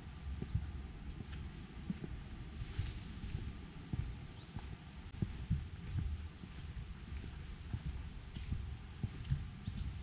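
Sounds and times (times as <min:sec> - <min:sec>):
footsteps on woodland path: 0:00.0 - 0:10.0.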